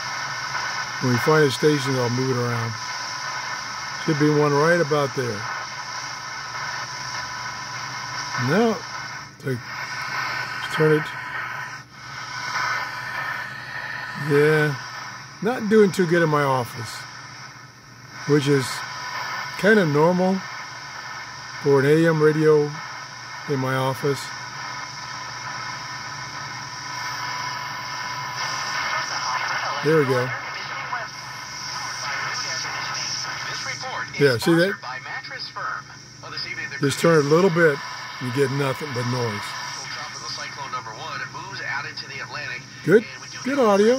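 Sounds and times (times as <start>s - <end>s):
radio static hiss: 0.0s - 43.9s.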